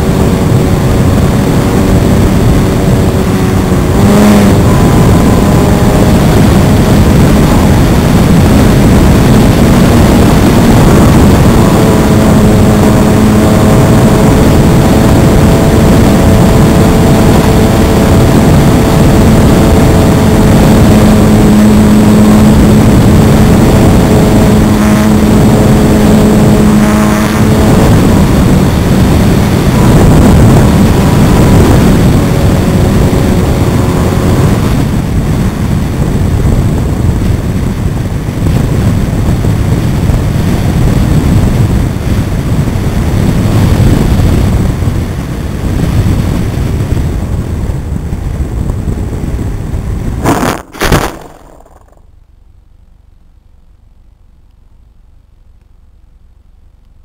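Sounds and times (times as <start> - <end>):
air rushing over camera: 0.0 - 52.5
electric motor and propeller whine: 0.0 - 57.0.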